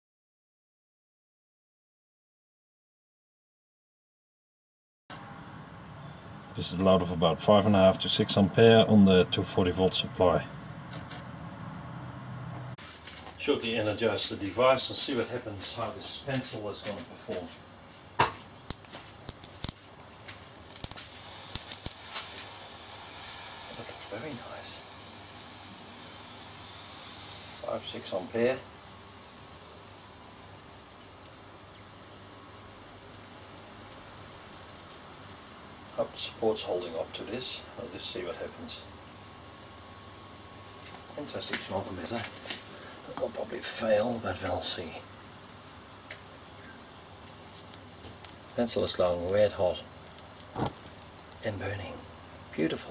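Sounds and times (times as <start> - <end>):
steady hiss: 12.8 - 52.9
snaps and crackles: 16.3 - 52.7
hiss of smoking pencil: 20.4 - 33.7.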